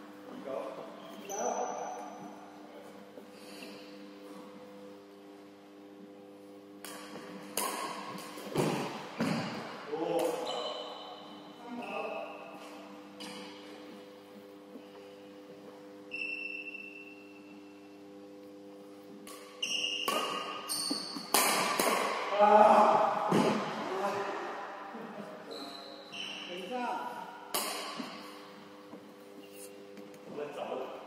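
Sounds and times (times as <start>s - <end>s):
steady low hum: 0.0s - 31.0s
shoes squeaking on floor: 1.0s - 2.0s, 10.4s - 11.1s, 19.6s - 21.3s, 25.4s - 26.7s
racket hitting shuttlecock: 6.8s - 10.4s, 19.2s - 22.3s, 27.5s - 28.3s.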